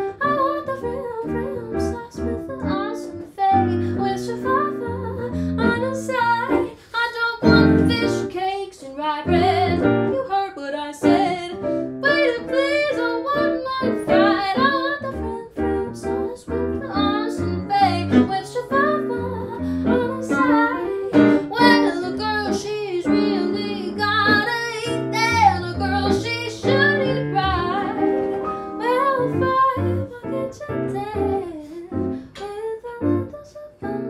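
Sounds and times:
woman singing: 0.0s - 34.0s
electronic keyboard chords: 23.1s - 30.1s.

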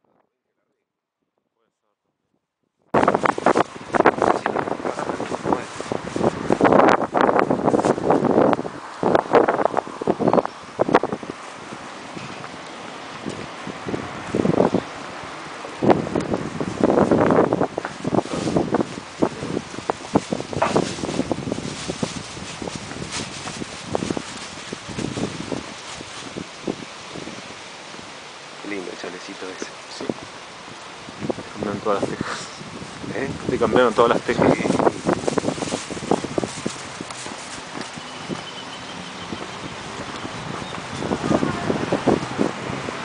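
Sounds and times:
wind buffeting microphone: 2.9s - 43.0s.

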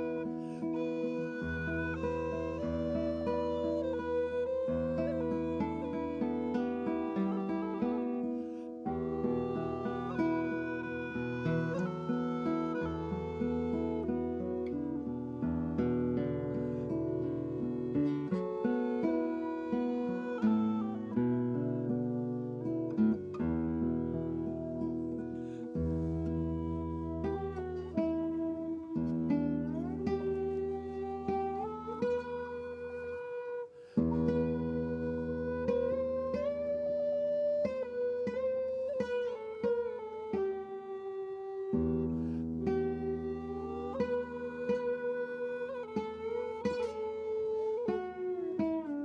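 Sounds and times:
recorder melody: 0.0s - 21.9s, 24.0s - 48.4s
plucked classical guitar: 0.0s - 49.0s.

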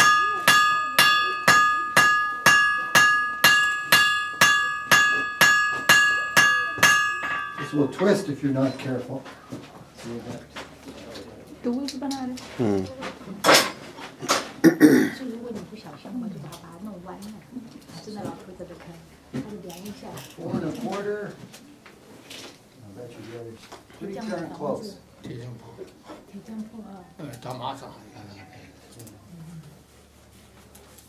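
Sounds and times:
man's low voice murmuring: 12.6s - 13.0s.

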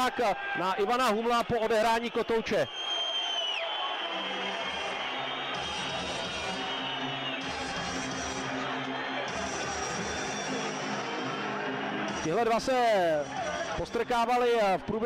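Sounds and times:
crowd noise: 0.0s - 15.0s
music over sound system: 4.0s - 15.0s.

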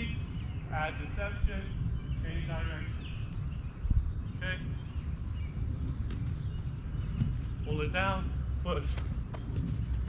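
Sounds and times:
steady low rumble: 0.0s - 10.0s
soccer ball taps on turf: 8.9s - 10.0s.

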